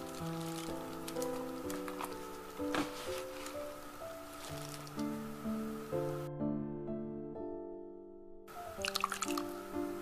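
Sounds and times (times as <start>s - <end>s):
background music: 0.0s - 10.0s
liquid splashing and dripping: 8.8s - 9.6s.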